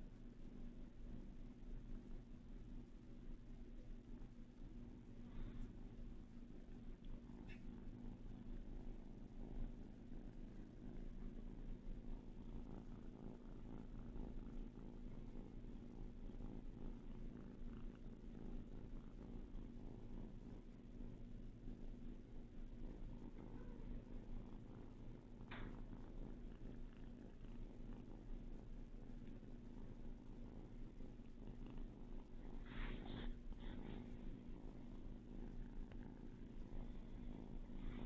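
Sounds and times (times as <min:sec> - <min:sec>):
kitten purring: 0:00.0 - 0:38.0
scratchy rustle: 0:32.4 - 0:34.5.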